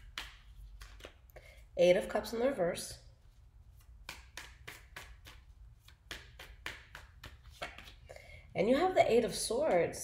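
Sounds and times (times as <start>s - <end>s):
cards being shuffled: 0.0s - 1.3s, 3.7s - 8.1s.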